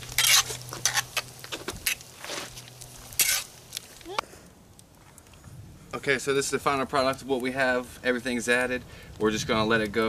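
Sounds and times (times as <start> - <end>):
metal fork scraping pot: 0.0 - 1.2, 3.2 - 3.5.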